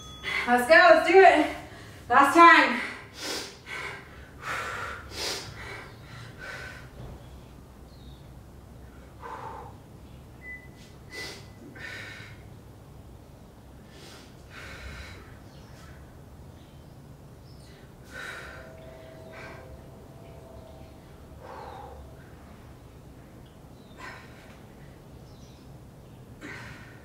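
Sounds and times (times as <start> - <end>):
woman breathing hard: 1.6 - 2.1, 2.7 - 7.1, 8.9 - 10.0, 10.8 - 12.6, 13.8 - 16.2, 17.6 - 23.2, 23.8 - 25.2, 26.4 - 27.0.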